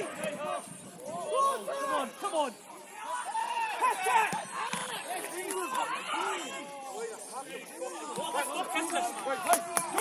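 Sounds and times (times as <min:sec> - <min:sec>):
people shouting: 0:00.0 - 0:07.0, 0:07.7 - 0:10.0.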